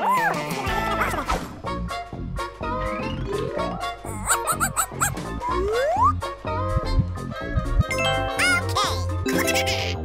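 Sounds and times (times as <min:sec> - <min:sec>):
upbeat children's music: 0:00.1 - 0:10.0
cartoon dog yips: 0:04.2 - 0:06.1.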